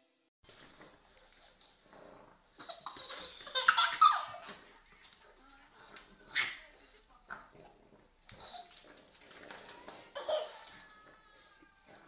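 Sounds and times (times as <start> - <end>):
baby vocal sounds: 9.9 - 12.0.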